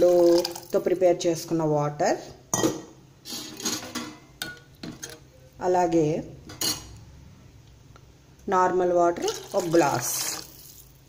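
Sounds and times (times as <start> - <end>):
kitchen background noise: 0.0 - 11.0
utensil clinking on metal cookware: 2.5 - 5.2, 6.5 - 6.9.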